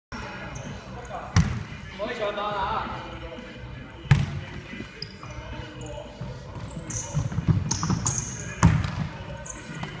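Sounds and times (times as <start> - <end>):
sneakers squeaking on floor: 0.2 - 1.7, 4.0 - 10.0.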